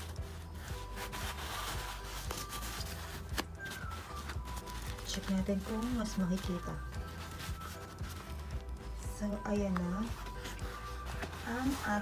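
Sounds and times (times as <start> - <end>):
fabric and ribbon rubbing: 0.0 - 12.0
soft background music: 0.0 - 12.0.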